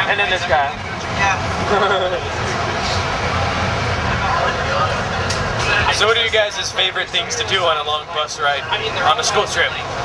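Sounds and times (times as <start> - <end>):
bus engine and road rumble: 0.0 - 10.0
faint passenger chatter: 0.0 - 10.0.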